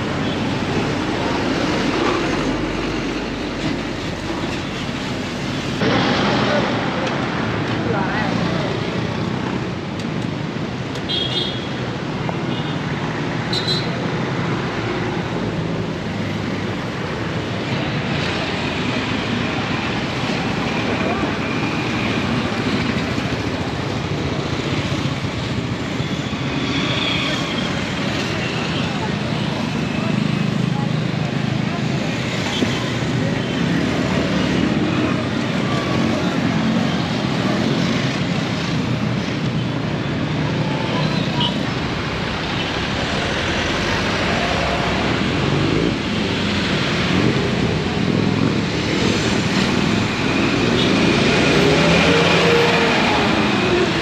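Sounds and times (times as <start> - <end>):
road traffic: 0.0 - 54.0.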